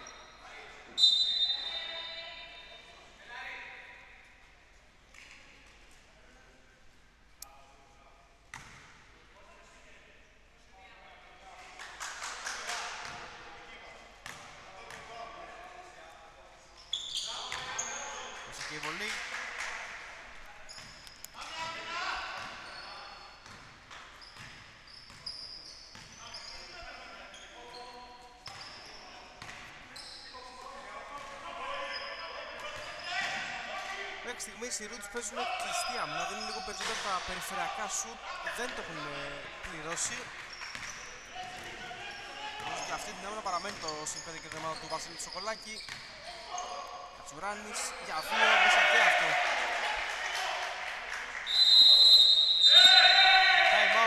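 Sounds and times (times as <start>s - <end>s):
sneakers squeaking: 0.0s - 2.9s, 8.5s - 8.9s, 14.2s - 15.4s, 16.8s - 19.0s, 20.5s - 33.7s, 34.3s - 49.4s
players calling out: 31.5s - 40.4s, 41.0s - 54.0s.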